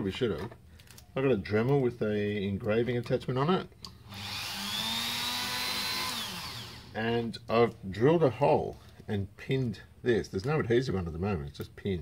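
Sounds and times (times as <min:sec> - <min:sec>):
rotary tool whine: 0:04.0 - 0:07.0.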